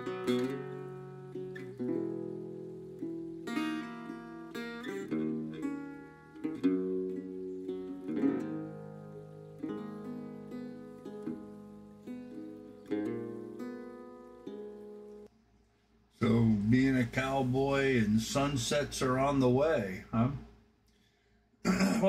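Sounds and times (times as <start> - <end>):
resonator guitar strumming: 0.0 - 15.3.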